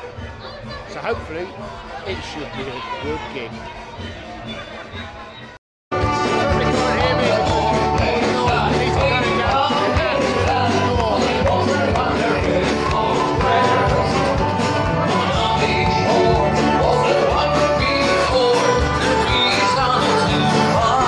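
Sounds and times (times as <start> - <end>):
band singing sea shanty: 6.0 - 21.0.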